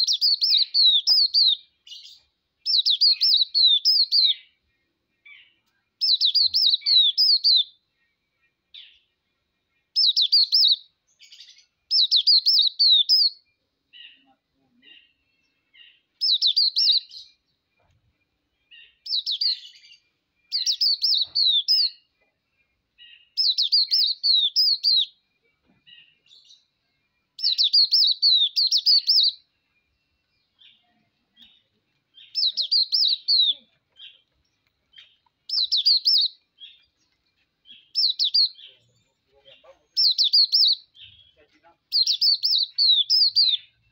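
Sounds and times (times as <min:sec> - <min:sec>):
bird twittering song: 0:00.0 - 0:43.9
soft bird chirps: 0:00.0 - 0:43.9.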